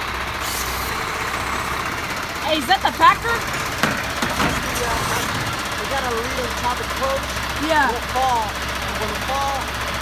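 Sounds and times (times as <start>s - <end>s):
diesel engine idling: 0.0s - 10.0s
voices talking: 2.0s - 9.8s.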